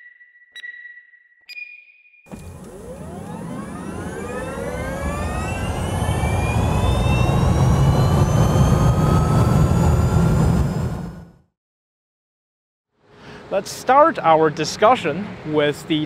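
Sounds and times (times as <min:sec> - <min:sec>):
heavy low rumble: 0:02.3 - 0:11.4
rising whine: 0:02.3 - 0:11.5.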